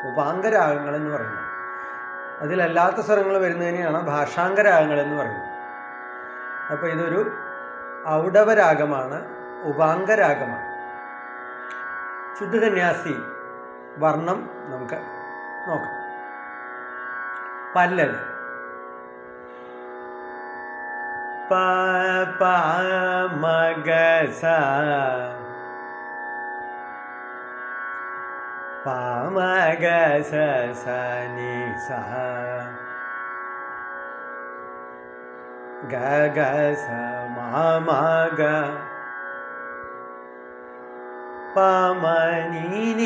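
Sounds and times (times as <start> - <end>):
steady drone: 0.0 - 43.0.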